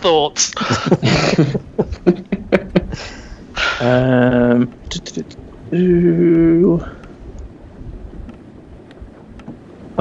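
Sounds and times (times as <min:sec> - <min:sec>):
low rumbling background noise: 0:00.0 - 0:10.0
faint ticks: 0:06.2 - 0:09.6.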